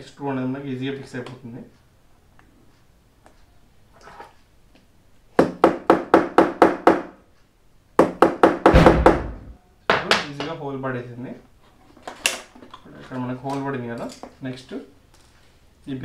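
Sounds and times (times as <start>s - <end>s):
heavy hammer thump: 8.6s - 10.1s.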